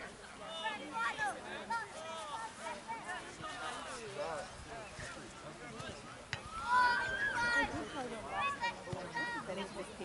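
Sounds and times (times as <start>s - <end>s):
young voices calling out: 6.4s - 9.9s.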